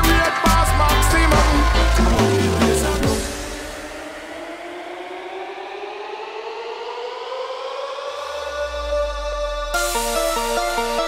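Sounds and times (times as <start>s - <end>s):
deep bass tone: 0.0s - 3.8s, 8.4s - 11.0s
synth tone rising in pitch: 1.1s - 11.0s.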